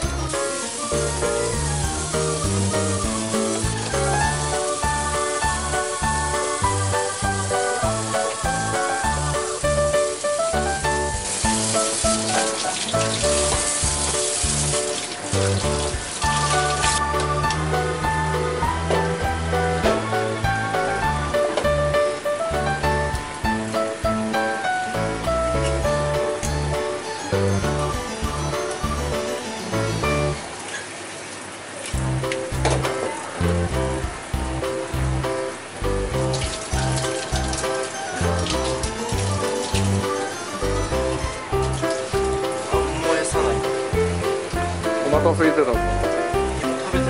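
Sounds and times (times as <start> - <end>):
background music: 0.0 - 30.6, 32.0 - 47.0
tap water running: 0.0 - 47.0.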